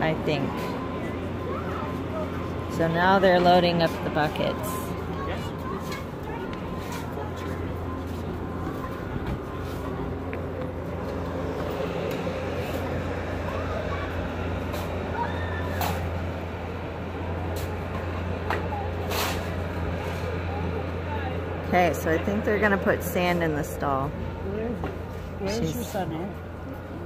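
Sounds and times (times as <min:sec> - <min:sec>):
faint voices: 0:00.0 - 0:27.0
low mechanical hum: 0:00.0 - 0:27.0.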